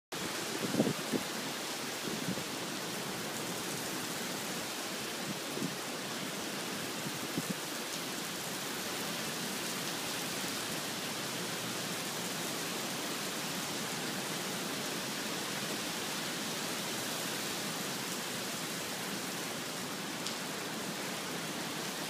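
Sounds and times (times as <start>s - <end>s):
rain on pavement and cars: 0.1s - 22.0s.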